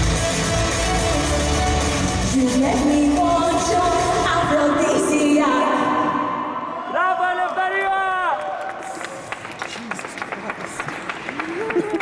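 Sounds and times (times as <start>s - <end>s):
crowd noise in large hall: 0.0s - 12.0s
scattered clapping: 7.4s - 12.0s.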